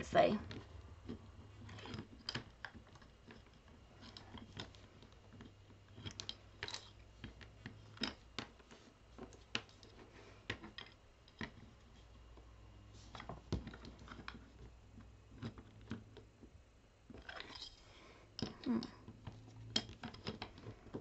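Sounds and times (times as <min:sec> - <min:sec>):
clicks and taps of handling wood and wire: 0:00.4 - 0:12.5, 0:13.1 - 0:16.5, 0:18.4 - 0:21.0.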